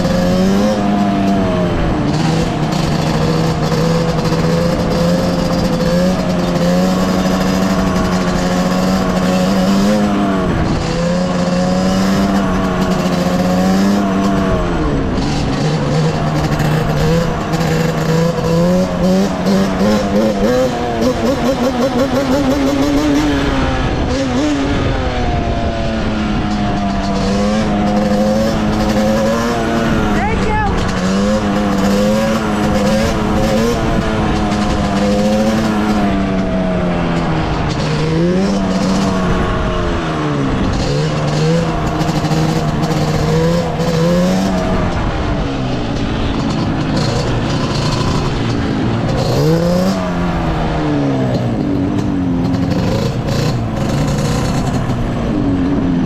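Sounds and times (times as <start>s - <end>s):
two-stroke engine running: 0.0s - 56.0s.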